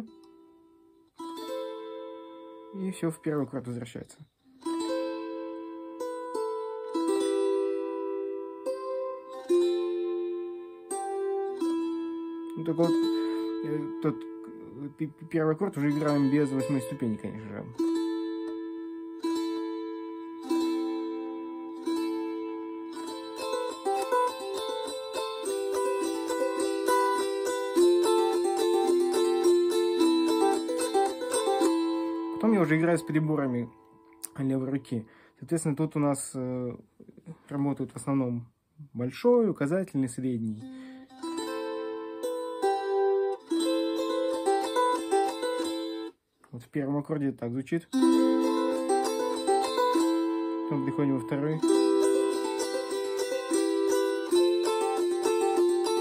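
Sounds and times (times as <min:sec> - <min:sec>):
psaltery strummed chords: 0:00.0 - 0:35.4, 0:40.6 - 0:46.2, 0:47.9 - 0:56.0
psaltery plucked notes: 0:00.0 - 0:38.0, 0:40.3 - 0:46.2, 0:47.9 - 0:56.0.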